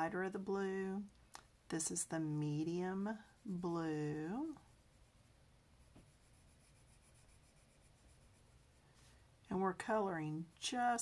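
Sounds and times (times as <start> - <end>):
coloured pencil scratching on paper: 1.8 - 11.0.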